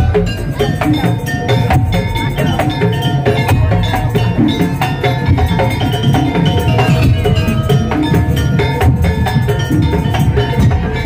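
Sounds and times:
bell-like metallic notes: 0.0s - 11.0s
driving drum beat: 0.0s - 11.0s.

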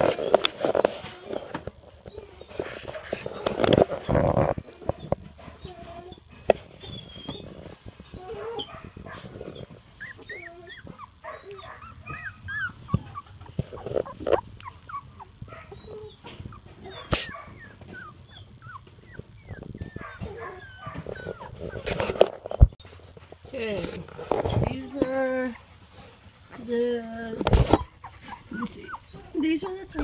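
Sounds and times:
puppies whimpering and squealing: 0.0s - 22.8s, 24.2s - 30.0s.

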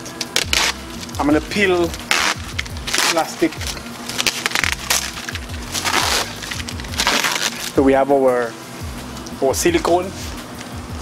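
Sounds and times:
background music: 0.0s - 11.0s
plastic film peeling and crackling: 0.1s - 7.9s.

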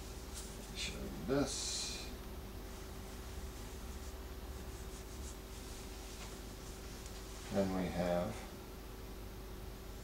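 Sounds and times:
low room hum: 0.0s - 10.0s
eraser rubbing on whiteboard: 3.4s - 6.8s.

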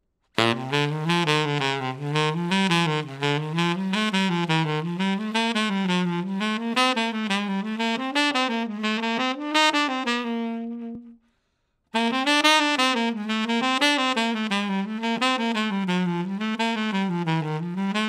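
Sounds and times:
solo jazz saxophone: 0.4s - 18.0s.

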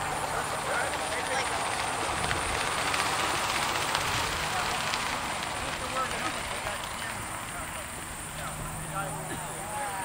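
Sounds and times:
distant people talking: 0.0s - 10.0s
low outdoor rumble: 0.0s - 10.0s.

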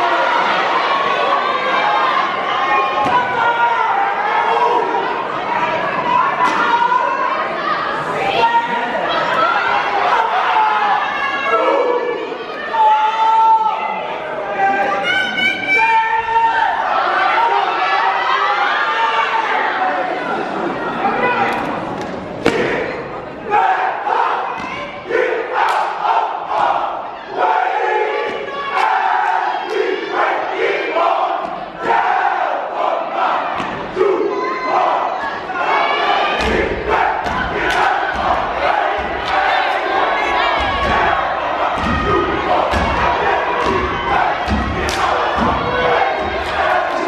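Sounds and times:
people shouting: 0.0s - 20.1s, 22.4s - 47.0s
crowd yelling: 0.0s - 47.0s
stomps and claps: 25.6s - 26.8s, 33.5s - 33.9s, 36.4s - 39.9s, 40.5s - 47.0s
heavy deep stomps: 40.4s - 46.9s.

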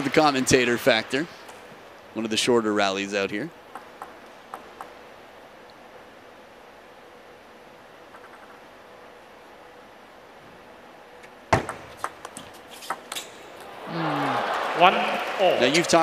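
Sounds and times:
low hall hush: 0.0s - 16.0s.

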